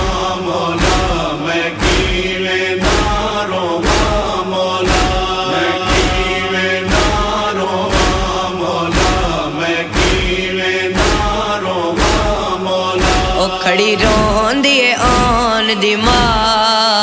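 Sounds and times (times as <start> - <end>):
male voices chanting: 0.0 - 17.0
chest-beating thumps: 0.8 - 16.6.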